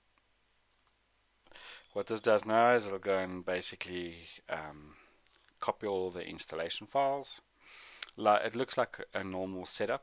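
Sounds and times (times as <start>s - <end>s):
computer mouse clicks: 0.7s - 1.0s
person speaking: 1.6s - 10.0s.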